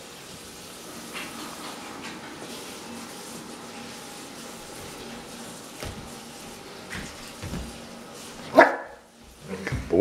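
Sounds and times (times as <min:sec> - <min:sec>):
dog barking: 0:08.5 - 0:09.1.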